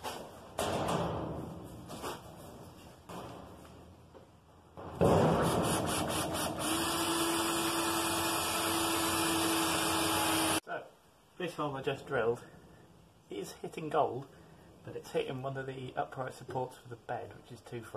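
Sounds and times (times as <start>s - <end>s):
drill boring through steel: 5.8s - 10.6s.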